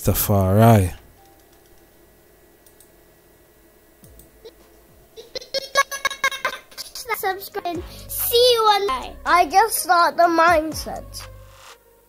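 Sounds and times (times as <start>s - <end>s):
low background hum: 0.0s - 12.0s.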